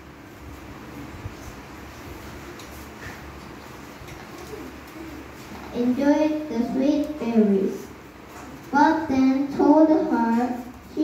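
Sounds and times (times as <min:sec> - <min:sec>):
girl speaking through a microphone: 0:05.6 - 0:08.0, 0:08.6 - 0:11.0.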